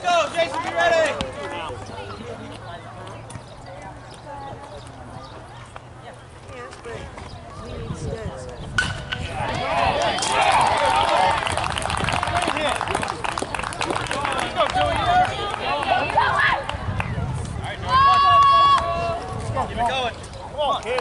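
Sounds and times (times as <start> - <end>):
crowd chatter: 0.0 - 21.0
baseball bat cracking ball: 8.8 - 9.3
crowd shouting and cheering: 8.8 - 20.2.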